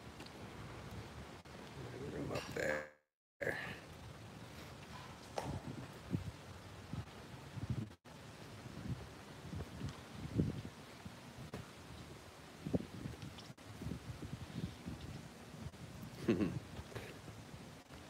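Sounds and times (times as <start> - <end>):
wind buffeting microphone: 4.7 - 17.9.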